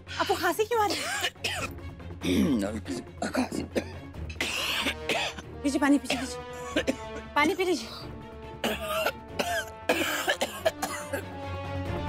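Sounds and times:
background music with held notes: 0:00.0 - 0:12.0
man coughing harshly: 0:00.9 - 0:05.4, 0:06.1 - 0:07.1, 0:08.6 - 0:11.3.

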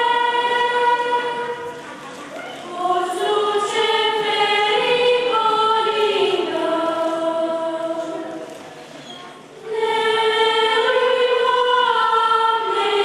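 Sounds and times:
girls' choir singing carol: 0:00.0 - 0:08.5, 0:09.6 - 0:13.0.

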